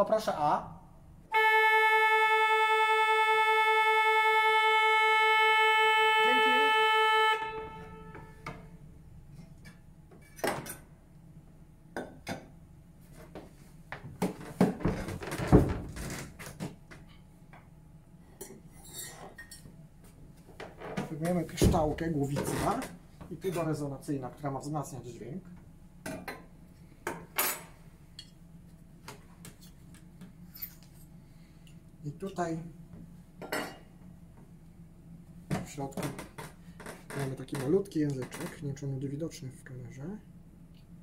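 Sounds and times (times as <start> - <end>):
pipe organ held note: 1.3 - 8.8.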